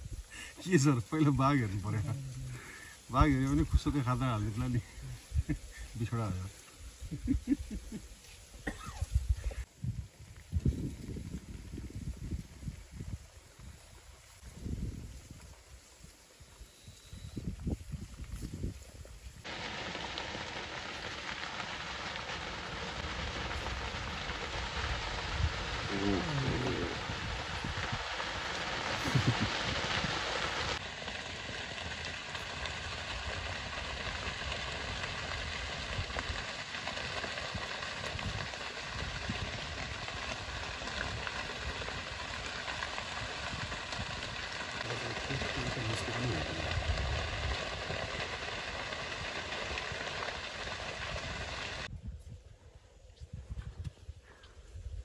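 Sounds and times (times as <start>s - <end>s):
grass fire crackling: 0.0s - 55.0s.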